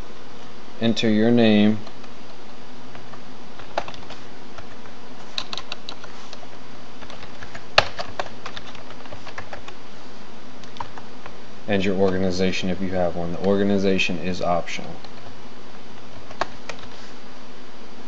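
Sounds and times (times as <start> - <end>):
low background hum: 0.0 - 18.0
typing on keyboard: 3.0 - 4.8, 5.4 - 9.8.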